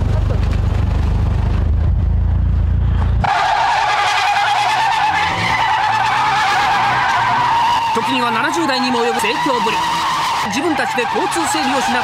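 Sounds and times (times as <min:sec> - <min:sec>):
car engine rumble: 0:00.0 - 0:12.0
tyre squeal: 0:03.2 - 0:12.0.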